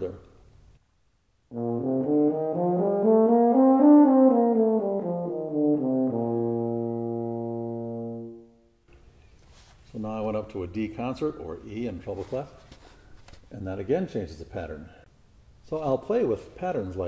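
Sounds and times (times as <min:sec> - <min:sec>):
euphonium playing a scale: 0:01.5 - 0:08.6.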